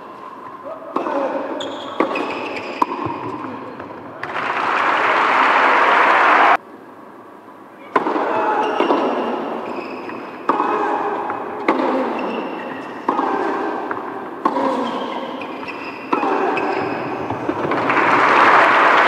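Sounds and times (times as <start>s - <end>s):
tennis ball bouncing on hard court: 1.9s - 4.3s, 10.4s - 12.3s.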